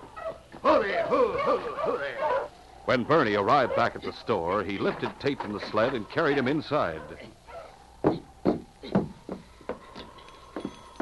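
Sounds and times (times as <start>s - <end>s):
knocks and thumps on wood: 8.0s - 10.8s
footsteps: 8.0s - 11.0s.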